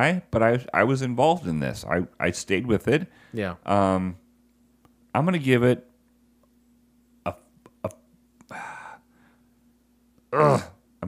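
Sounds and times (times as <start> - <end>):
man groaning: 10.3 - 10.8
man grunting: 10.3 - 10.8.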